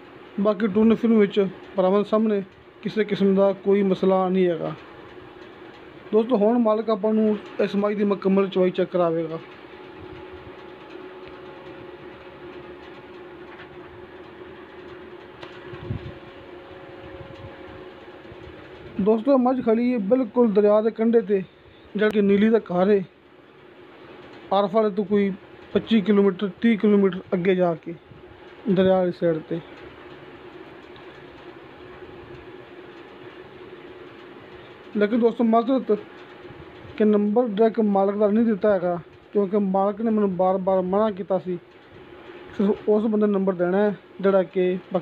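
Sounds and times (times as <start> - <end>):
steady mechanical hum: 0.0 - 45.0.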